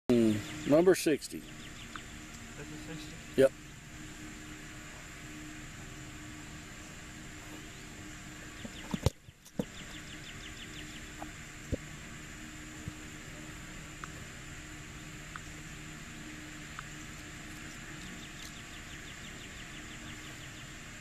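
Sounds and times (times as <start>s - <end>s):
outdoor background noise: 0.1s - 21.0s.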